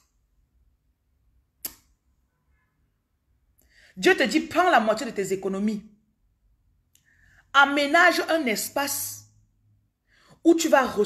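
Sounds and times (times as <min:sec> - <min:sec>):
sharp click: 0:01.6 - 0:02.0.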